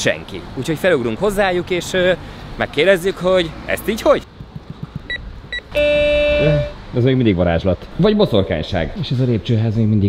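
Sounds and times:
intercom keypad beeps: 0:05.1 - 0:06.7
intercom buzzing tone: 0:05.6 - 0:06.8.

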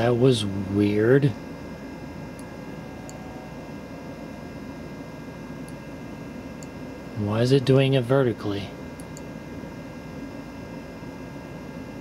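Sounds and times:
computer fan hum: 0:00.0 - 0:12.0
faint whine: 0:00.0 - 0:12.0.

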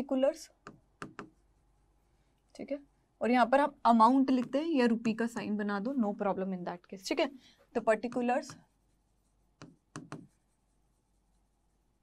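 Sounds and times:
chalk scratching on blackboard: 0:07.9 - 0:12.0.

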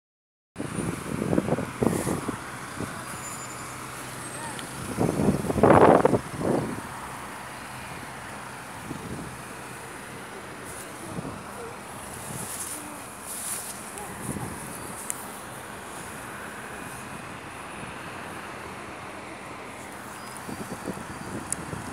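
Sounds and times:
passing cars and buses: 0:00.6 - 0:21.9.

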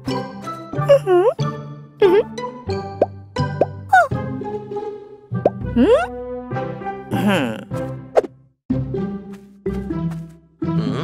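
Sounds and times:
bouncy cartoon music: 0:00.0 - 0:11.0.

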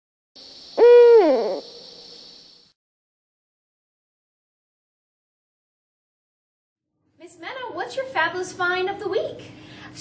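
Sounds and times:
faint steady hiss: 0:00.4 - 0:02.8.

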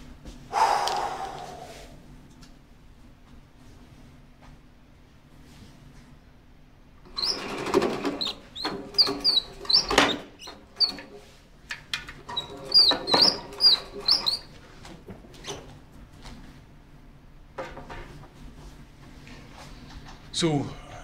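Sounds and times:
squeaky marker strokes on whiteboard: 0:08.2 - 0:11.1, 0:12.4 - 0:14.6.

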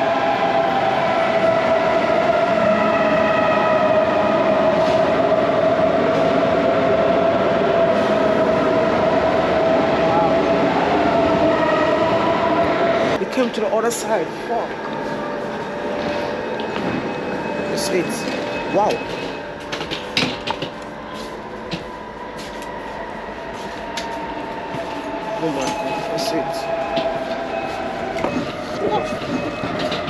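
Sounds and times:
electric train rumble and whine: 0:00.0 - 0:30.0.

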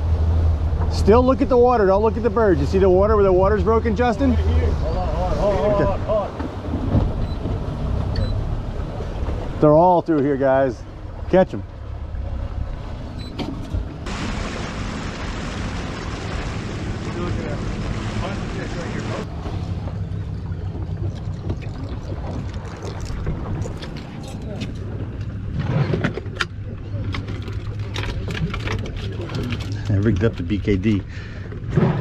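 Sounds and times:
boat engine idling: 0:00.0 - 0:31.7
water noise: 0:00.0 - 0:32.0
wind: 0:00.0 - 0:32.0.

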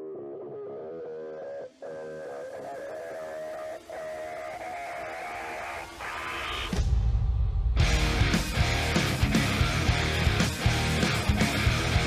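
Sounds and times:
guitar background music: 0:00.0 - 0:05.7, 0:07.8 - 0:12.0.

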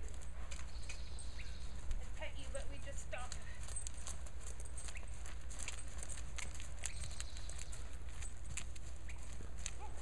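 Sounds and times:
horse trotting on soft footing: 0:00.0 - 0:10.0.

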